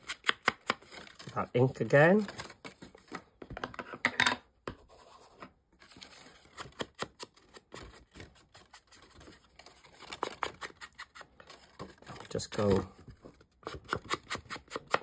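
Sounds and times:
card stock rustling: 0.7 - 3.6, 5.0 - 13.9.

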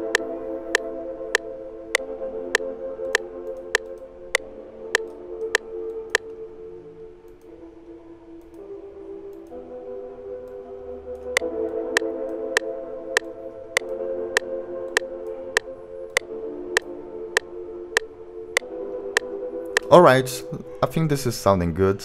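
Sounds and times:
synth pad chords: 0.0 - 20.8
metronome clicking: 3.1 - 4.0.

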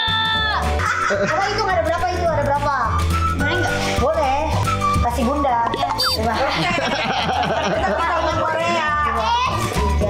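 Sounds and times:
background music with low beat: 0.8 - 8.2
child's high-pitched voice: 9.1 - 9.7.

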